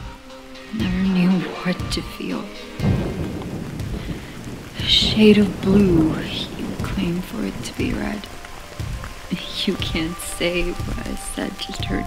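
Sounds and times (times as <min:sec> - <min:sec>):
low rumble: 0:00.0 - 0:12.0
steady rain: 0:00.0 - 0:12.0.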